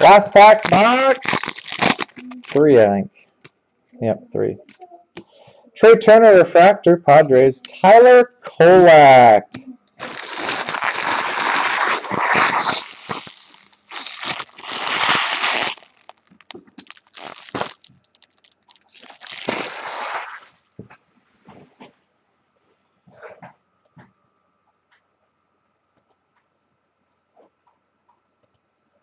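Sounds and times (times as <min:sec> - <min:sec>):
foil wrappers crinkling: 0:00.0 - 0:02.7, 0:10.0 - 0:20.6.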